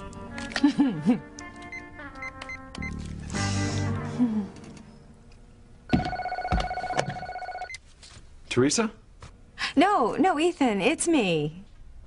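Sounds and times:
telephone ringer trilling: 0:05.9 - 0:07.8.

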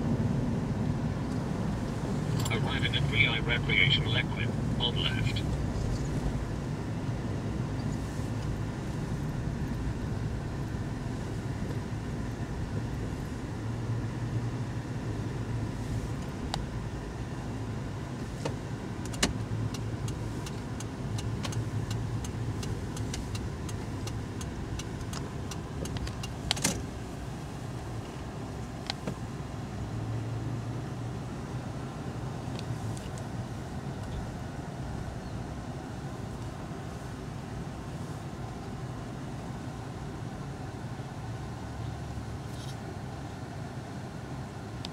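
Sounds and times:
car engine and road hum: 0:00.0 - 0:44.9.

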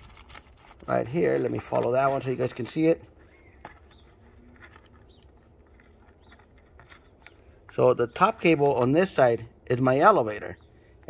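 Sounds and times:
soft clicks and rustles of handling: 0:00.0 - 0:08.9.

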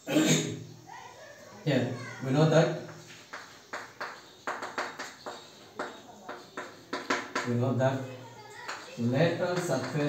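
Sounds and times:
chalk writing on blackboard: 0:02.9 - 0:07.5.

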